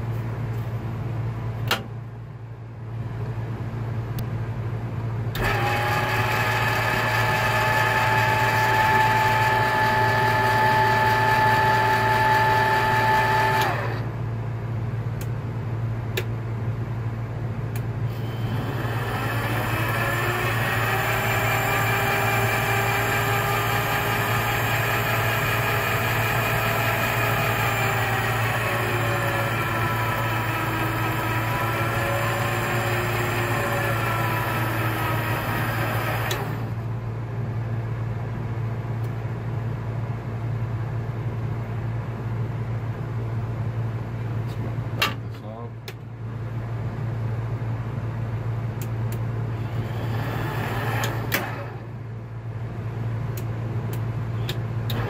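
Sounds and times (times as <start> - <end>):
lathe motor whining: 5.4 - 14.1, 18.1 - 36.8, 49.5 - 52.1.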